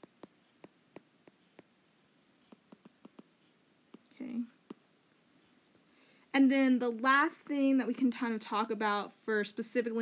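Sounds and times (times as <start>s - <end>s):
stylus tapping on tablet screen: 0.0s - 1.8s, 2.4s - 4.9s
soft whispered vocal sound: 4.0s - 4.8s.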